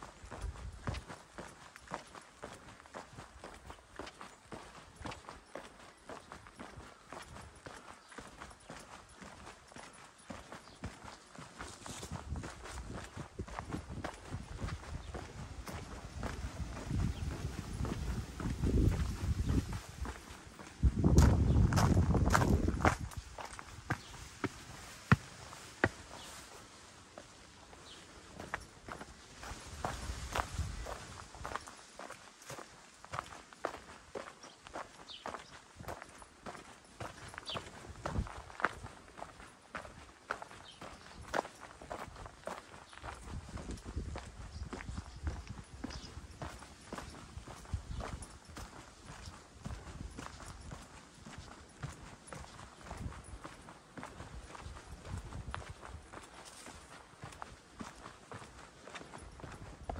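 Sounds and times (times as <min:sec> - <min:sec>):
footsteps on gravel: 0:00.0 - 0:59.9.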